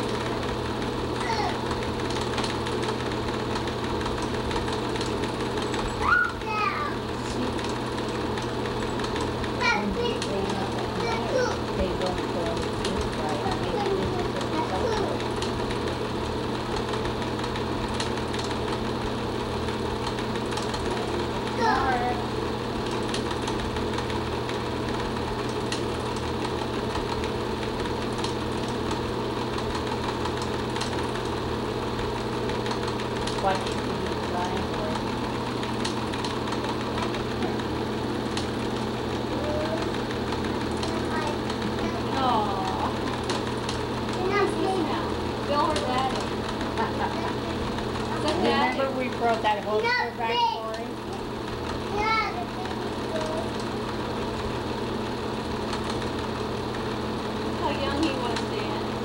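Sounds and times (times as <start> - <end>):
film projector whirring: 0.0 - 59.0
rising high-pitched voice calls: 6.0 - 6.4.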